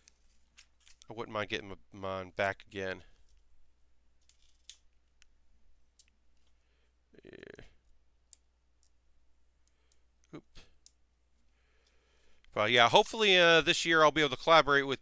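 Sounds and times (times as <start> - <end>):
short vocal sound: 7.1 - 7.8.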